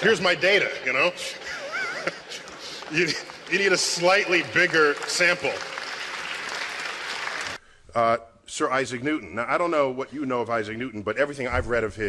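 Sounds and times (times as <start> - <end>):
audience applauding: 0.0 - 7.6.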